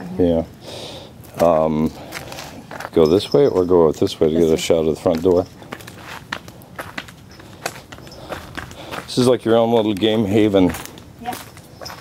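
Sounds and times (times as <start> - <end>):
footsteps on concrete steps: 1.2 - 12.0.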